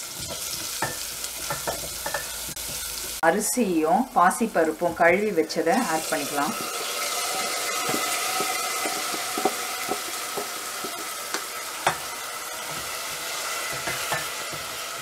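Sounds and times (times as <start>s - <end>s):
food sizzling in pot: 0.0s - 15.0s.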